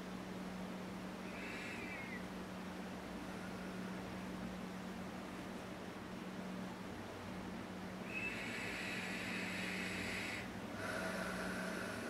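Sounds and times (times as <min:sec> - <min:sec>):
low hum and room hiss: 0:00.0 - 0:12.0.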